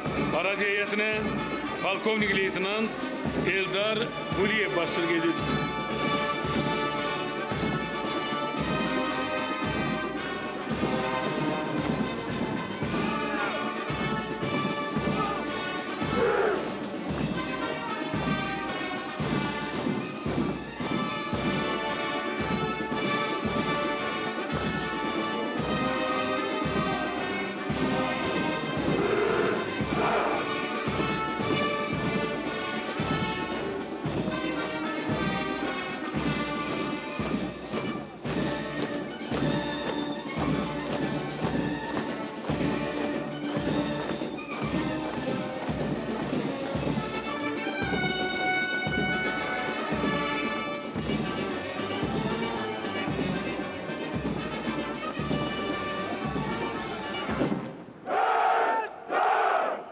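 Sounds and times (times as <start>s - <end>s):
brass band playing a march: 0.0s - 59.9s.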